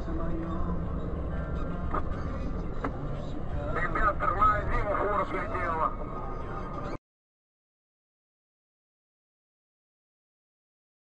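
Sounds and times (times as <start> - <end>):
vehicle rumble inside cab: 0.0 - 7.0.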